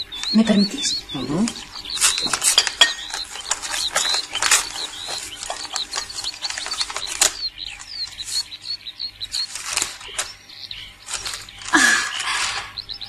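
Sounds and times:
small birds chirping: 0.0 - 13.0
paper rustling and crackling: 1.4 - 8.6, 9.2 - 10.4, 11.0 - 12.7.

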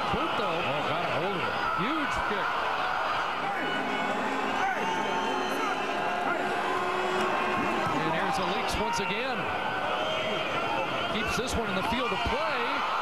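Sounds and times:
stadium crowd murmur: 0.0 - 13.0.

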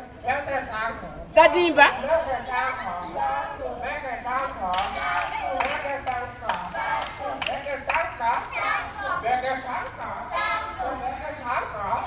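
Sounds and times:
children singing and calling out: 2.3 - 12.0.

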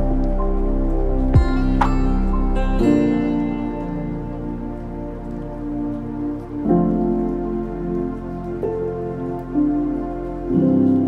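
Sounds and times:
soft sustained chord music: 0.0 - 11.0.

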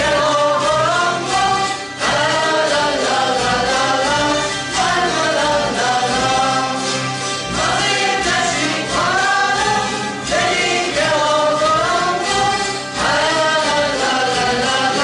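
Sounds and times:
voices singing in unison: 0.0 - 15.0
zither ensemble strumming: 0.0 - 15.0.

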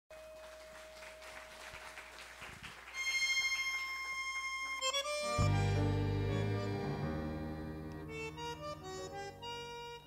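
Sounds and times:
audience applause: 0.1 - 4.0
bandoneon sustained note: 5.4 - 10.0.

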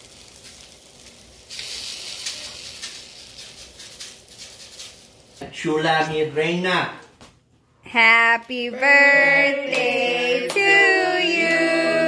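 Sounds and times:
sprinkles pattering onto cake: 0.0 - 5.4.

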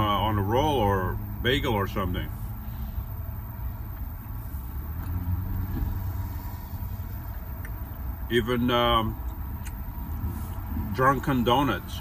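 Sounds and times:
steady low rumble with hum: 0.0 - 12.0.

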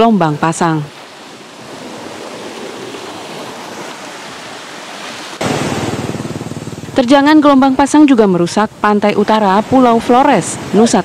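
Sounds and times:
sea waves breaking on shore: 0.0 - 11.0
rough rushing noise: 5.1 - 7.0.

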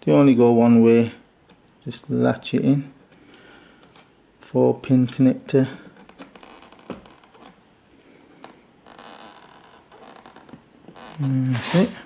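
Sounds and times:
fan cable rustling: 5.1 - 12.0.

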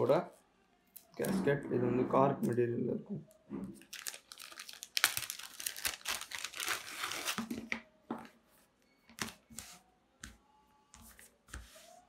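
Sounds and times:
plastic bag crinkling: 3.8 - 7.8.

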